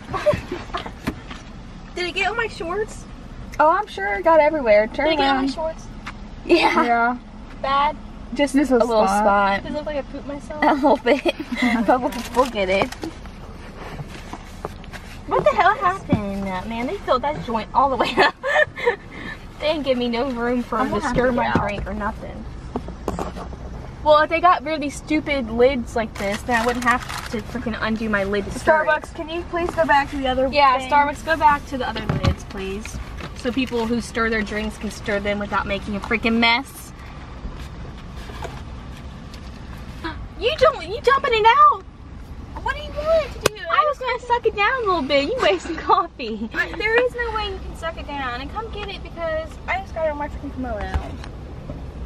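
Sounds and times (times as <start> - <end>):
car engine idling: 0.0 - 52.0.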